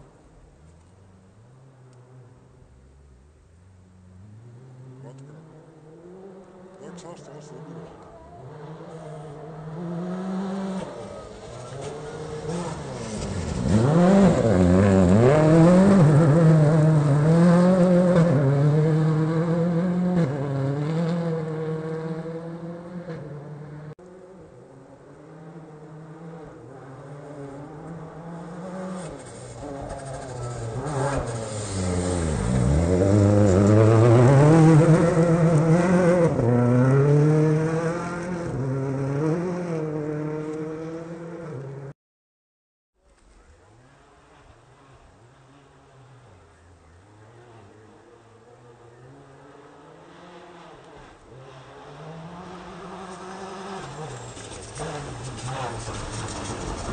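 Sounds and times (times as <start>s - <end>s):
rally car engine at high revs: 4.2s - 41.9s, 43.7s - 56.9s.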